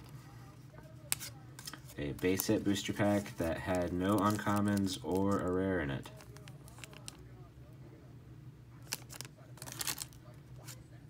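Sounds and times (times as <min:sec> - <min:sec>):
faint low hum: 0:00.0 - 0:11.0
cards and wrapper rustling: 0:01.0 - 0:07.2, 0:08.8 - 0:10.8.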